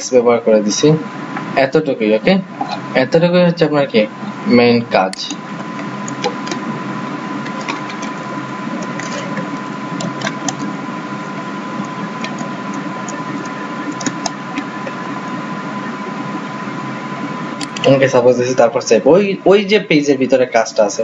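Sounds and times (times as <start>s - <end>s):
steady background hum: 0.0s - 21.0s
computer keyboard keystrokes: 13.1s - 14.7s, 17.6s - 17.9s.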